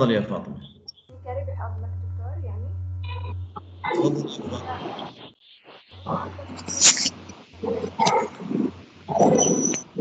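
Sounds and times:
low hum: 0:00.0 - 0:10.0
muffled distorted voice: 0:01.2 - 0:05.3, 0:06.0 - 0:08.7.

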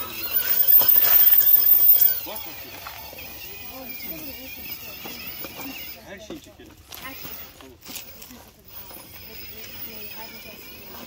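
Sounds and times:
indistinct background talk: 0:00.0 - 0:11.0.

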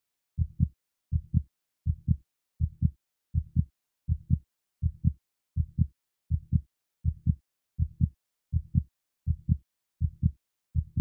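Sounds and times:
heartbeat thumps: 0:00.4 - 0:11.0.

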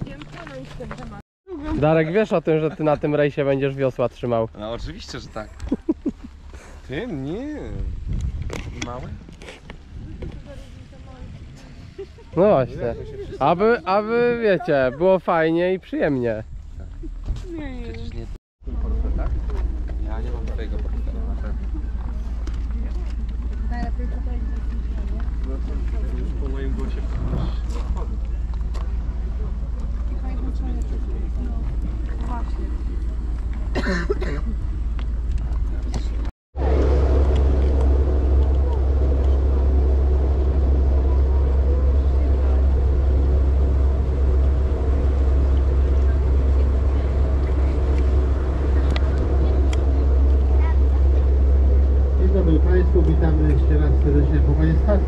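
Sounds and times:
steady low rumble: 0:00.0 - 0:55.0
boat engine drone: 0:17.0 - 0:55.0
indistinct voices: 0:35.3 - 0:55.0.

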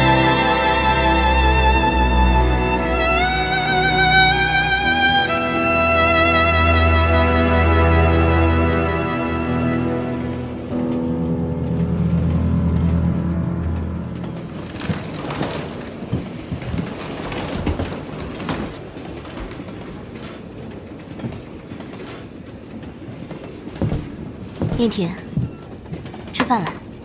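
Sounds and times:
soft music: 0:00.0 - 0:16.0
carriage rumble and rattling: 0:09.8 - 0:24.8
train wheels clicking over rail joints: 0:09.8 - 0:27.0.

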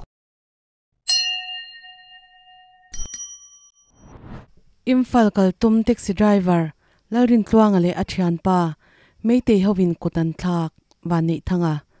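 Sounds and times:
bell ding: 0:01.1 - 0:04.1.

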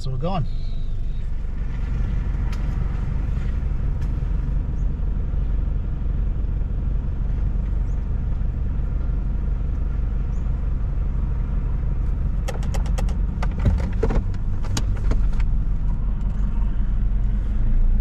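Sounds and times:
engine idling inside cabin: 0:00.0 - 0:18.0.

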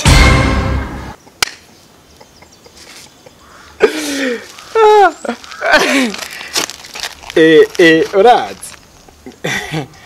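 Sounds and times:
man laughing heartily: 0:02.1 - 0:06.2, 0:09.2 - 0:10.0.

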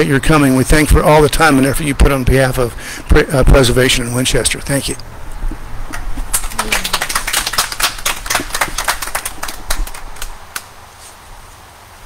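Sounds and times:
sparse clapping: 0:05.9 - 0:10.7.

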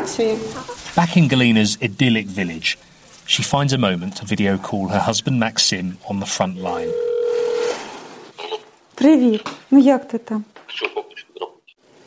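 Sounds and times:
video call ringing tone: 0:06.5 - 0:07.8.

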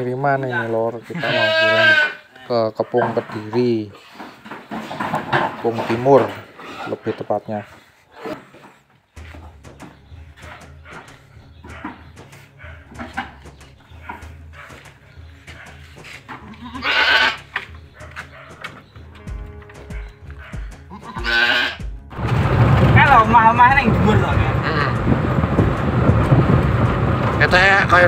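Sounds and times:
goat bleating: 0:01.0 - 0:02.5, 0:16.3 - 0:17.7, 0:20.9 - 0:21.9, 0:24.6 - 0:25.1
background music: 0:09.1 - 0:28.0.

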